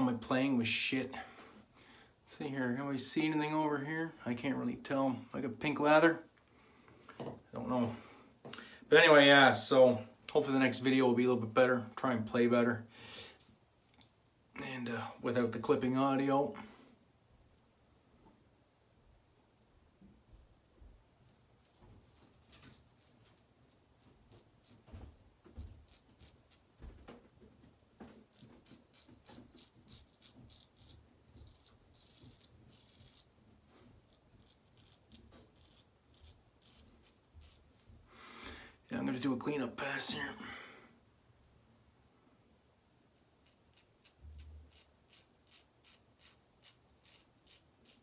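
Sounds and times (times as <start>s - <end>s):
razor scraping stubble: 21.2s - 24.9s, 25.6s - 26.8s, 28.1s - 37.9s, 43.2s - 48.0s.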